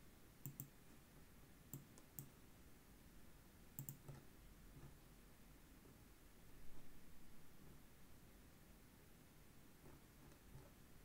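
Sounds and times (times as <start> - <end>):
computer mouse clicks: 0.4 - 0.7, 1.7 - 2.4, 3.8 - 4.2.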